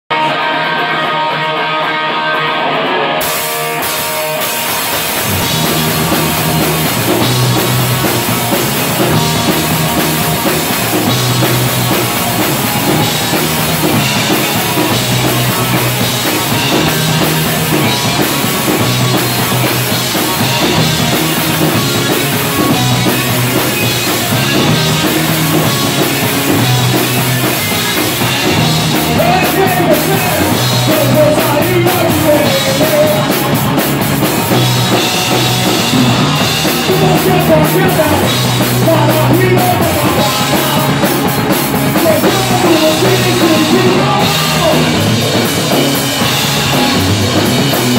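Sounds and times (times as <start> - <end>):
bass guitar: 0.0 - 47.9
electric guitar: 0.0 - 47.9
drums and cymbals: 3.2 - 47.9.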